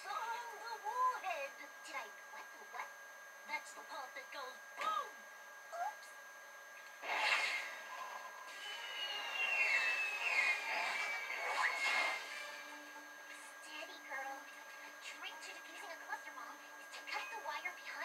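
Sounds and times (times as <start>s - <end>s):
falling bomb whistle: 8.5s - 12.2s.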